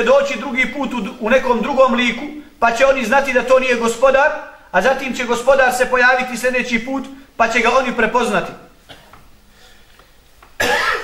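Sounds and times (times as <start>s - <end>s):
man coughing: 8.8s - 9.2s, 10.6s - 11.0s.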